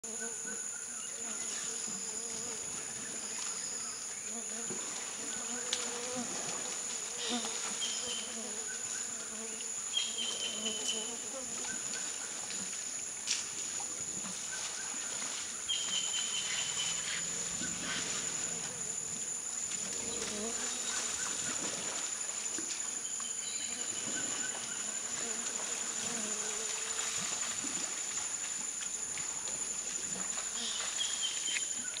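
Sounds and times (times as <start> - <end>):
insect chorus buzzing: 0.0 - 32.0.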